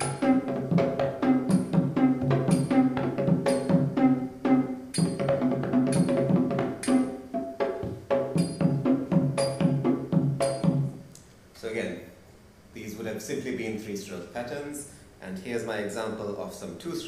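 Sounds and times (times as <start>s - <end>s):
drumming over speakers: 0.0s - 11.1s.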